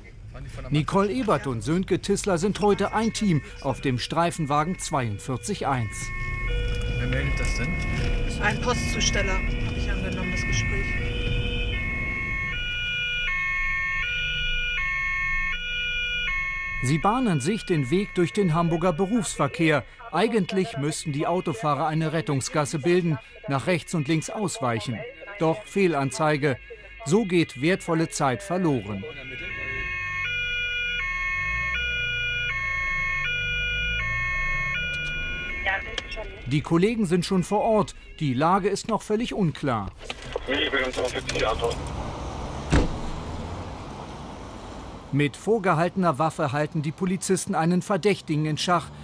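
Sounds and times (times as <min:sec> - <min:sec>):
car engine rumbling: 0:00.0 - 0:25.0, 0:28.2 - 0:49.0
police car two-tone siren: 0:02.4 - 0:38.5.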